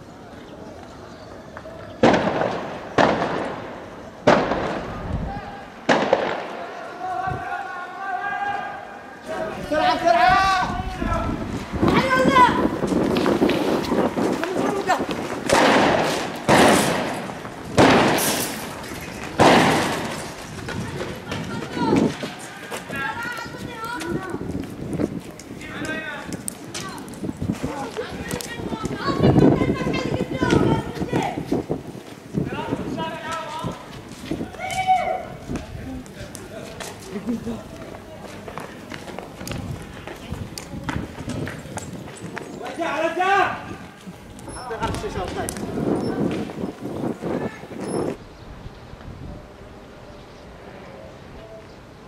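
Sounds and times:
footsteps on pavement: 0:00.0 - 0:03.6, 0:08.4 - 0:48.2
loud gunshot bangs with echo: 0:02.0 - 0:05.0, 0:05.9 - 0:06.7, 0:15.5 - 0:18.6, 0:19.4 - 0:20.2.

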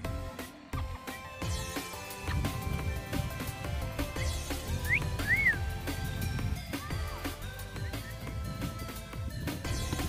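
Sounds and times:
background music: 0:00.0 - 0:10.0
person whistling: 0:04.8 - 0:05.6.

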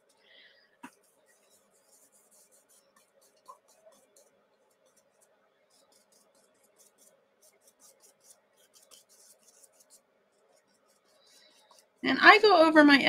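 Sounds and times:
paintbrush scratching on paper: 0:00.0 - 0:00.2, 0:00.8 - 0:13.0.

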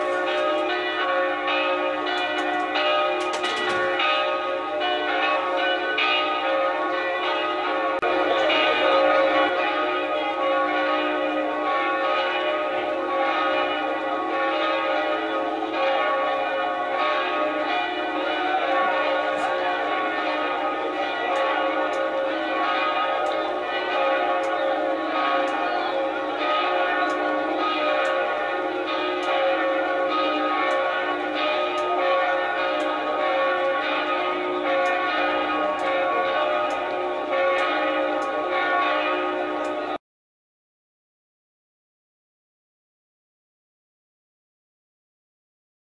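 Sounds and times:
church bells pealing: 0:00.0 - 0:40.0.

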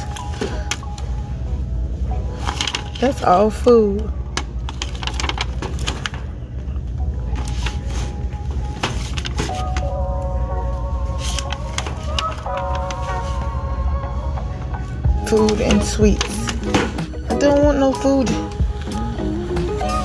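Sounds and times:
faint music with held notes: 0:00.0 - 0:20.0
steady low hum: 0:00.0 - 0:20.0
plastic film and cardboard crinkling: 0:04.6 - 0:06.4, 0:07.2 - 0:09.9, 0:11.0 - 0:13.6.

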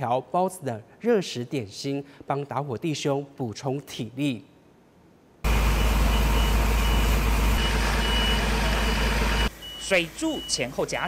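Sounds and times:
electronic beeper beeping: 0:05.8 - 0:11.0.

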